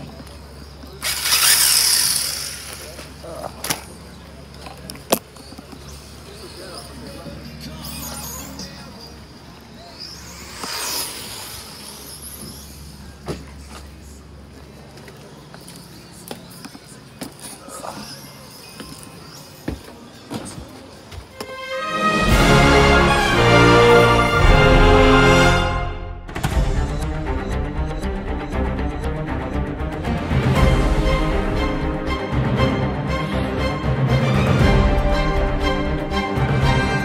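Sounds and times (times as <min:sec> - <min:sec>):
electric toy car motor whining: 0:01.0 - 0:03.1.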